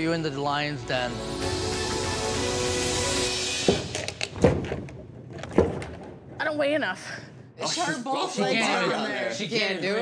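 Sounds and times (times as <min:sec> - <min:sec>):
background music: 0:00.0 - 0:05.2.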